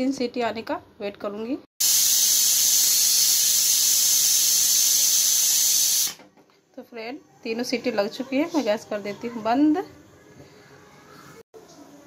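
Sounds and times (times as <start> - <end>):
pressure cooker whistling: 1.8 - 6.2.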